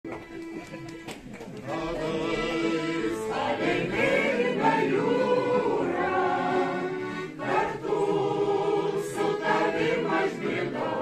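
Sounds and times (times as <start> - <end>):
piano accordion: 0.1 - 11.0
mixed choir singing folk song: 1.6 - 11.0.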